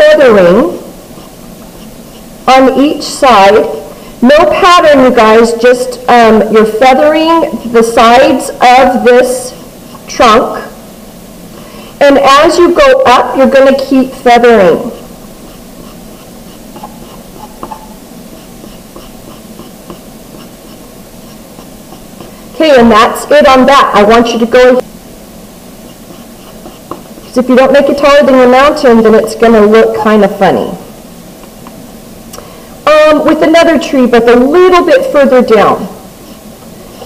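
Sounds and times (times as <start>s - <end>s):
woman speaking: 0.0s - 0.8s, 2.5s - 10.8s, 12.0s - 15.0s, 22.6s - 24.8s, 27.3s - 30.9s, 32.8s - 36.0s
pencil scratching on paper: 1.1s - 2.4s, 14.0s - 22.5s, 25.8s - 27.5s, 36.2s - 37.0s.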